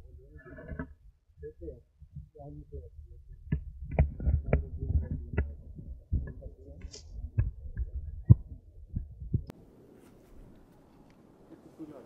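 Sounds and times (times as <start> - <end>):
thumps on microphone: 3.4 - 9.5
faint hiss: 9.6 - 12.0.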